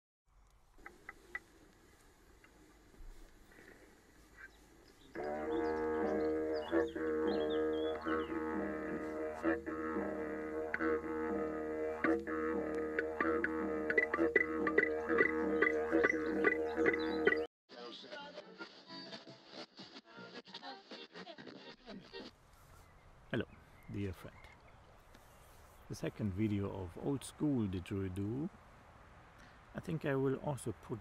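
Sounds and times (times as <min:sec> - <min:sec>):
rhythmic didgeridoo drone: 0:05.2 - 0:17.5.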